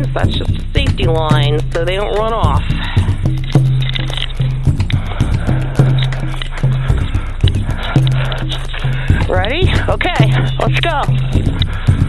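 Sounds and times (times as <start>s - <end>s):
background music with steady beat: 0.0s - 12.0s
repeating bass note: 0.0s - 12.0s.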